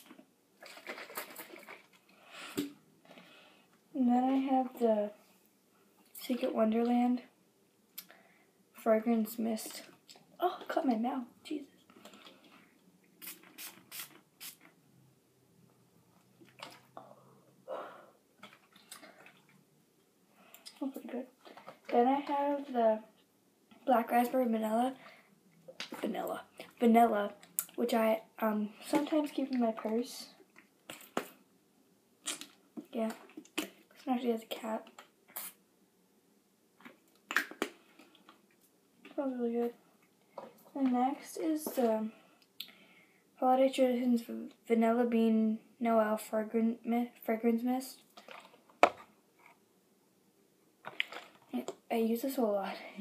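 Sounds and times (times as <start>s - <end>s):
spray bottle hissing spurts: 13.2s - 14.7s.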